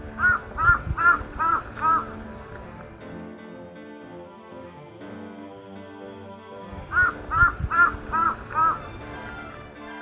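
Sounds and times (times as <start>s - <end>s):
background music: 0.0s - 10.0s
crow cawing: 0.1s - 2.2s, 6.9s - 8.8s.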